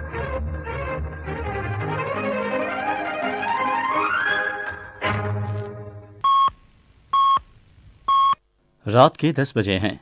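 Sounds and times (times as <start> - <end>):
violin chord: 0.0 - 6.2
short electronic beeps: 6.2 - 6.6, 7.2 - 7.4.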